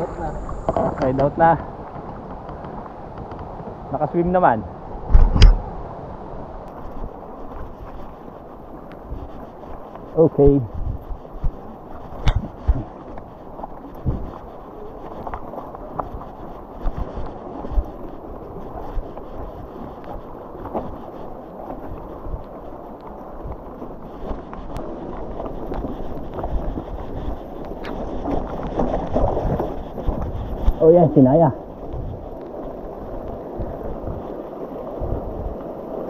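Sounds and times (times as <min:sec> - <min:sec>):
wind buffeting microphone: 0:00.0 - 0:36.0
bike tyres rumbling on gravel: 0:06.7 - 0:36.0.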